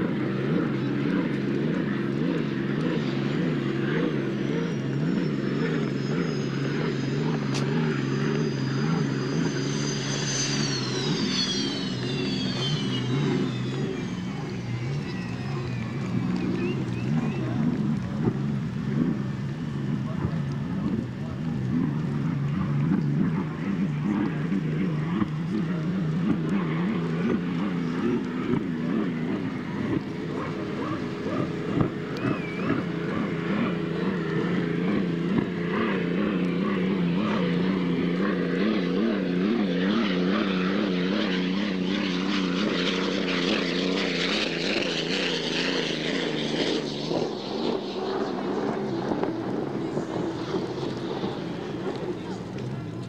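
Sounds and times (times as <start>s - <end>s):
high engine whine: 0.0s - 53.0s
racing boat engines droning: 0.0s - 53.0s.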